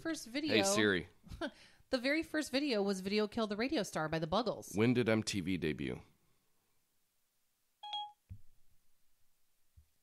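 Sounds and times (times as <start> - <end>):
short electronic beep: 7.8 - 8.2.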